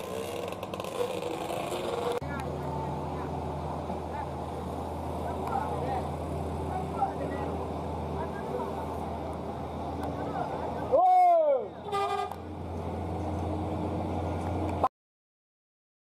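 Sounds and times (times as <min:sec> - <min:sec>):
vehicle engines running: 0:00.0 - 0:14.9
horn-like toot: 0:11.8 - 0:12.4.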